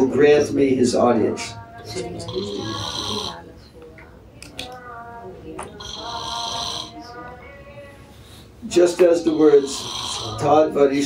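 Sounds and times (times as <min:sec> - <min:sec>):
low voice murmuring: 0:01.8 - 0:04.7.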